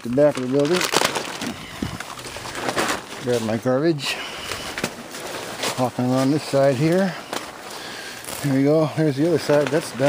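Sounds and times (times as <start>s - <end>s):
footsteps crunching through dry leaves: 4.4s - 9.5s.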